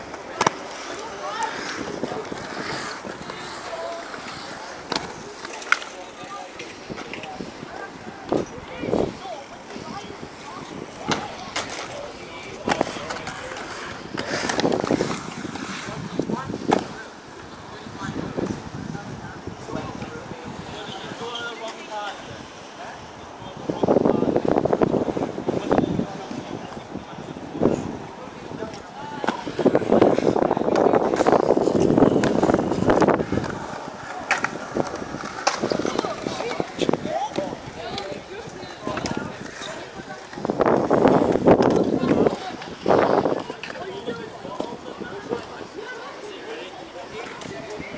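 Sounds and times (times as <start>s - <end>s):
skates knocking on concrete: 0.0s - 7.5s, 10.6s - 18.6s, 28.4s - 45.6s
children's voices: 0.0s - 21.2s
kids' voices: 0.0s - 47.9s
skate wheels rolling on concrete: 0.0s - 47.9s.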